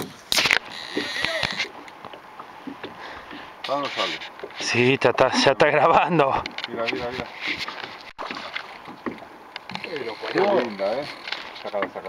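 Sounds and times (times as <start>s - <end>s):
water sloshing and splashing: 0.0s - 12.0s.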